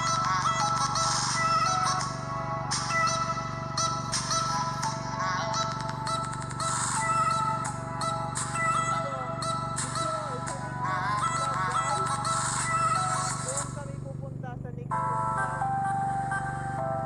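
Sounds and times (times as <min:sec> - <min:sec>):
melodic background music: 0:00.0 - 0:13.8, 0:14.9 - 0:17.0.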